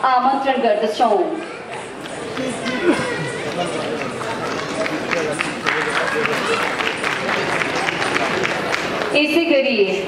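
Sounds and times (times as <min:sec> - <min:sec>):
people talking indistinctly: 0:00.0 - 0:10.0
crowd murmur: 0:01.0 - 0:10.0.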